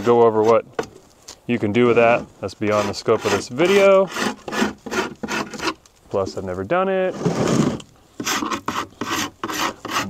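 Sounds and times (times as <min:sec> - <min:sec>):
hive tool scraping wood: 0:00.0 - 0:10.0.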